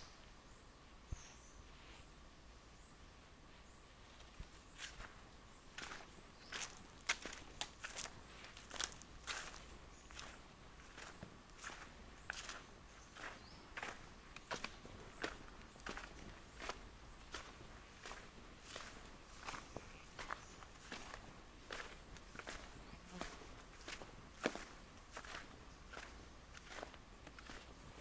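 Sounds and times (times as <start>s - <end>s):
footsteps on sandy dirt and grass: 3.4s - 28.0s.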